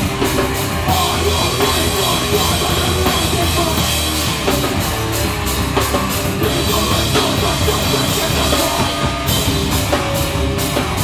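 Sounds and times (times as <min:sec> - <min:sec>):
distorted electric guitar: 0:00.0 - 0:11.0
drum kit with cymbals: 0:00.0 - 0:11.0.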